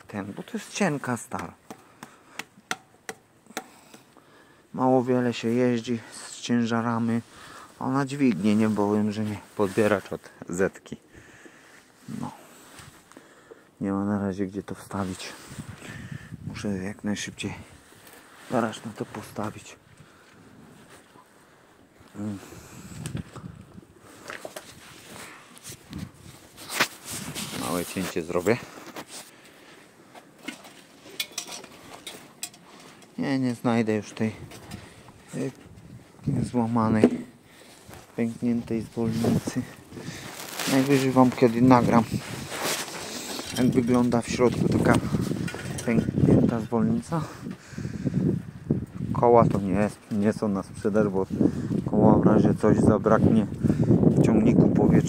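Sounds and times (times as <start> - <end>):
light clicks and clinks: 30.4 - 33.2.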